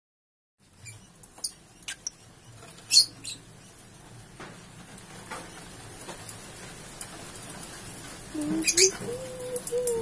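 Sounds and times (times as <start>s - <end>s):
mouse squeaking: 8.5s - 10.0s.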